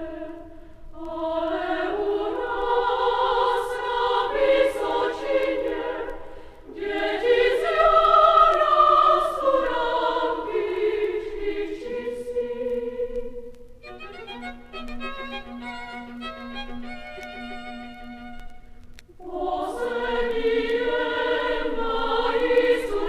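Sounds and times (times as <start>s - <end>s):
children's choir singing: 0.0s - 13.6s, 19.2s - 23.0s.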